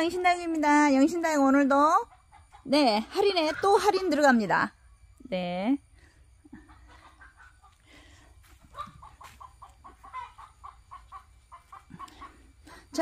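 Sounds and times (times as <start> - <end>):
faint animal calls: 6.4 - 12.9.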